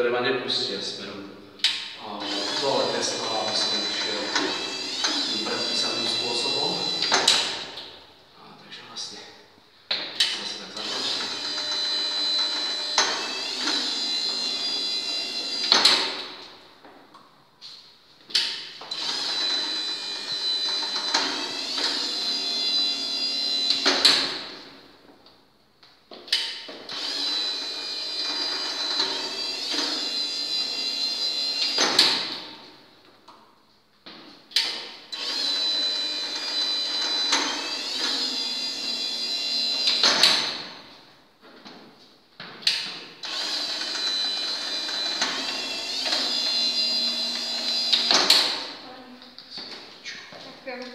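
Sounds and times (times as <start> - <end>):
electric motor and gearbox whining: 2.2 - 7.8, 10.4 - 16.5, 18.9 - 24.6, 26.9 - 32.5, 35.1 - 40.8, 43.2 - 48.8.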